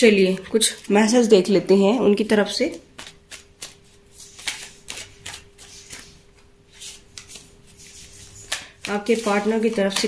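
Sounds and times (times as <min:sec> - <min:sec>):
cards being shuffled: 0:03.0 - 0:10.0.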